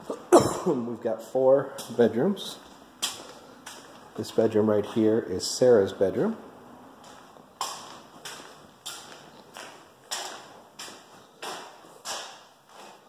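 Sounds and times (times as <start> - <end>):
footsteps on concrete floor: 1.7 - 5.6, 6.9 - 13.0.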